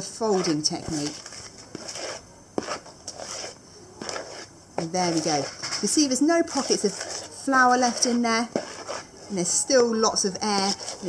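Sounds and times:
spoon scraping plastic bowl: 0.0 - 11.0.

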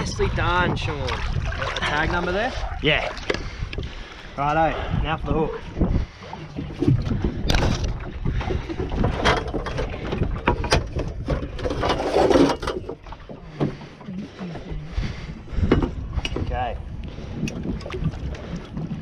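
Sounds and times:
wind noise on microphone: 0.0 - 13.0, 14.6 - 19.0
metal pole knocking and rattling: 6.8 - 13.0.

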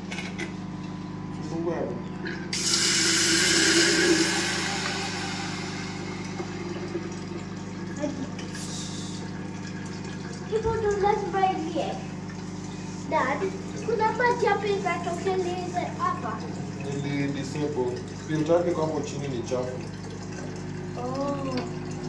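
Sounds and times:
steady low hum: 0.4 - 17.0
tap water pouring into kettle: 2.5 - 22.0.

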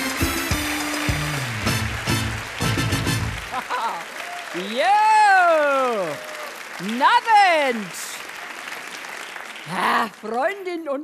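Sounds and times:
studio audience applauding: 0.0 - 11.0.

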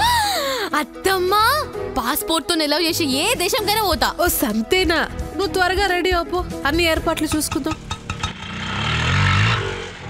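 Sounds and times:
vehicle engine passing by: 8.0 - 10.0.

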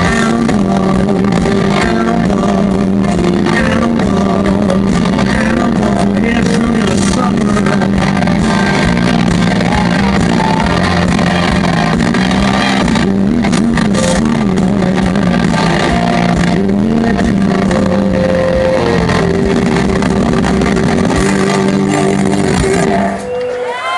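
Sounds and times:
electric guitars droning chords: 0.0 - 23.9.

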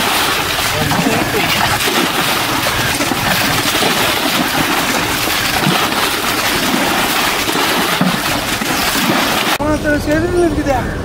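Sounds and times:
muddy water gushing and splashing: 0.0 - 9.7.

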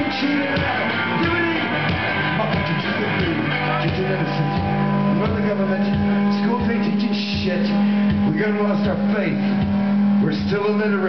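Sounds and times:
low drum thumps: 0.0 - 10.6
loud guitar drone: 0.0 - 11.0
sliding wailing guitar notes: 0.0 - 11.0.

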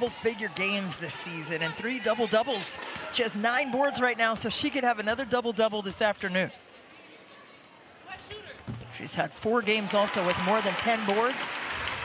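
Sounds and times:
faint crowd murmur: 6.4 - 8.7.

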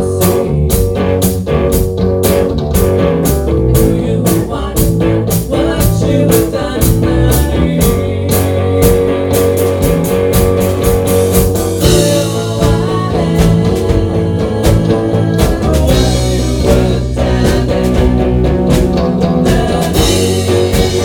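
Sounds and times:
rock band playing live: 0.0 - 21.0.

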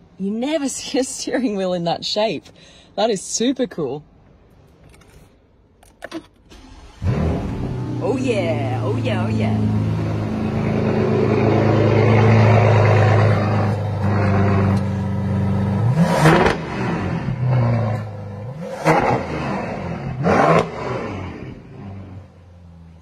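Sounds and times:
car engine idling and revving: 5.8 - 23.0.

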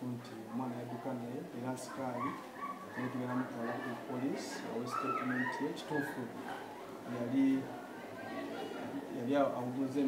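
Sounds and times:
man speaking: 0.0 - 6.4, 9.1 - 10.0.

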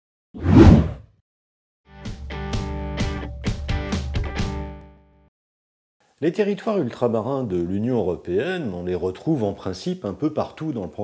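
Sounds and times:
whoosh: 0.4 - 1.0.

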